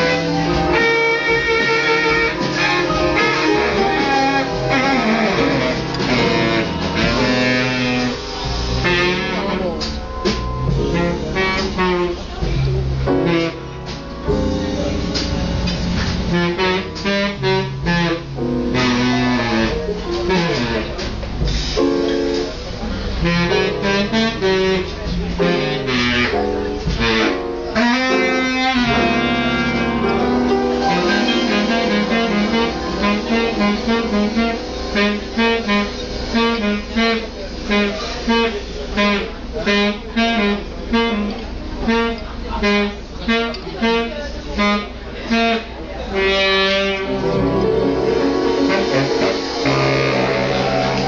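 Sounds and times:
big band playing swing: 0.0s - 51.0s.

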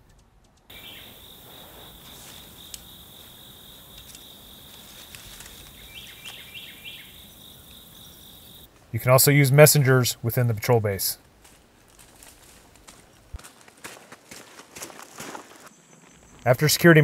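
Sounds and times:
insects trilling: 0.7s - 8.7s.

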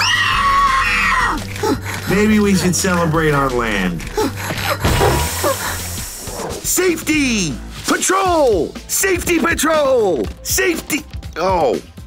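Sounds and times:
cartoon boy screaming: 0.0s - 1.4s
background music: 0.0s - 12.0s.

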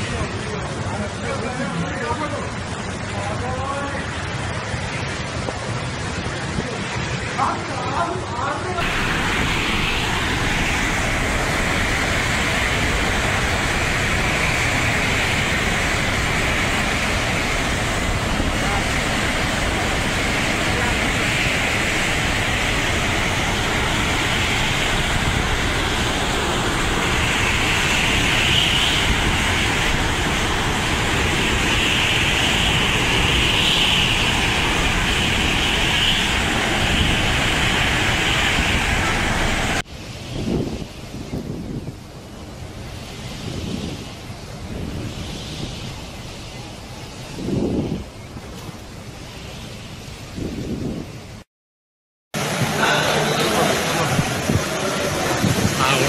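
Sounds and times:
driving rain: 0.0s - 51.4s, 52.4s - 56.0s
strong wind: 0.0s - 51.5s, 52.4s - 56.0s
wind buffeting microphone: 8.8s - 51.4s, 53.6s - 56.0s.

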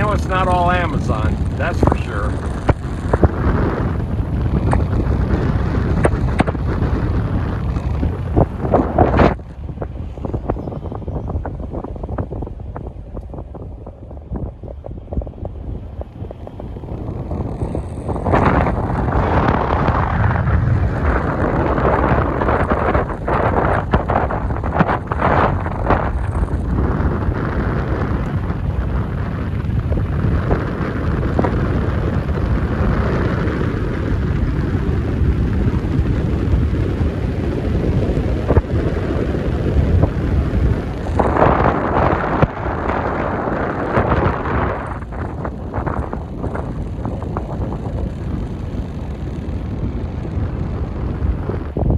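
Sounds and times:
low rumble of car driving: 0.0s - 51.9s
wind buffeting microphone: 0.0s - 51.9s.

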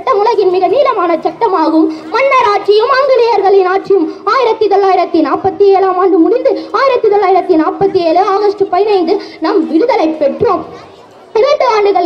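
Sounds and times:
boy speaking into a microphone: 0.0s - 12.0s.

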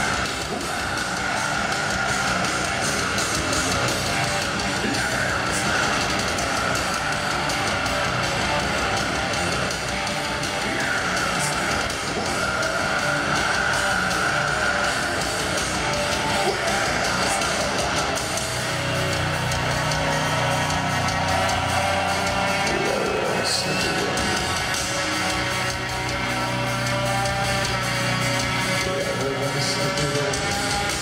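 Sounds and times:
distorted electric guitars: 0.0s - 31.0s
heavy metal band playing: 0.0s - 31.0s.

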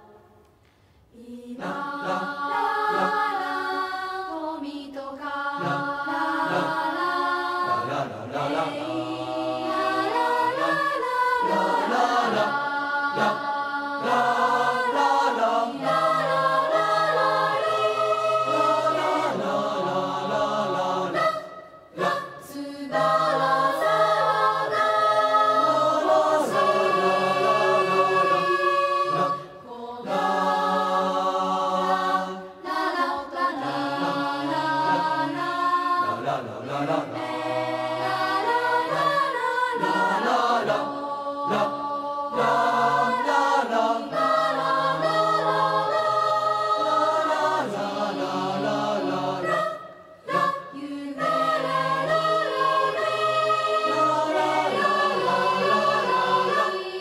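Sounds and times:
choir singing sustained chords: 1.1s - 57.0s.

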